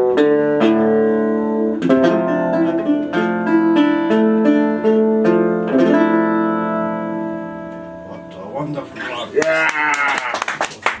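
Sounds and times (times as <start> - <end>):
man's drawn-out vocal call: 9.1 - 10.4
sharp irregular handclaps: 9.4 - 11.0.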